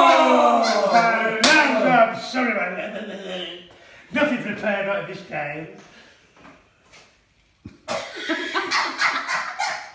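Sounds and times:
people laughing and shrieking: 0:00.0 - 0:01.7.

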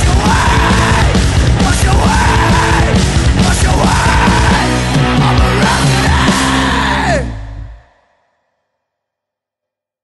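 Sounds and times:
metal band playing: 0:00.0 - 0:07.7.

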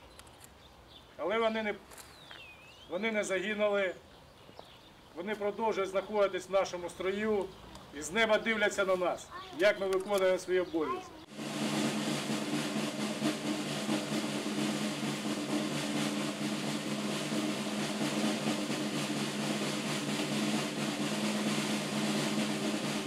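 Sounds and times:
low held notes: 0:11.2 - 0:23.0
snare drum roll: 0:11.2 - 0:23.0.

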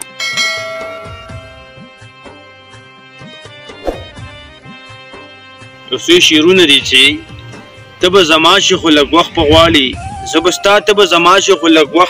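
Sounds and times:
bell-like chime: 0:00.2 - 0:01.6.

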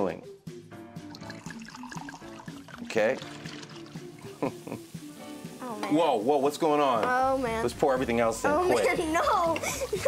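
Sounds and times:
background music: 0:00.0 - 0:10.0
powder pouring into water: 0:01.1 - 0:04.5.

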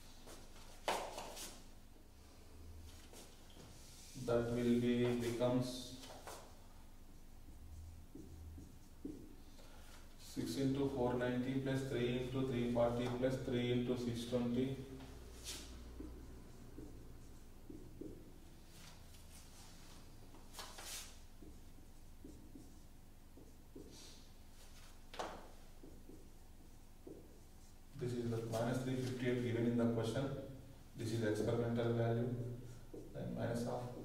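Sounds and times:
low steady hum: 0:01.5 - 0:34.0
marker writing on whiteboard: 0:04.4 - 0:19.7, 0:20.3 - 0:30.2, 0:32.7 - 0:34.0.

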